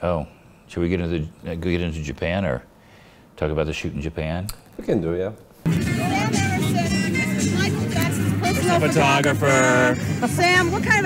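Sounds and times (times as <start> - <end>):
music: 5.7 - 11.0
voices: 5.9 - 11.0.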